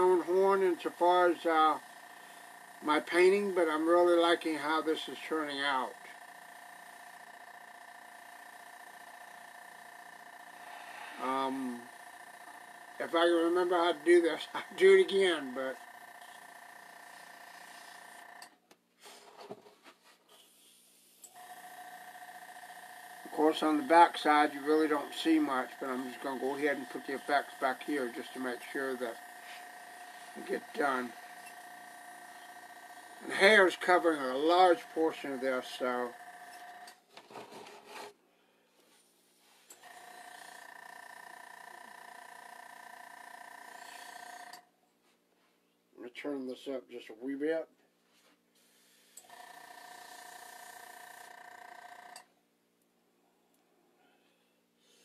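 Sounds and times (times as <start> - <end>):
air compressor whine: 0.0 - 19.6, 20.3 - 38.1, 39.5 - 44.7, 48.6 - 52.2.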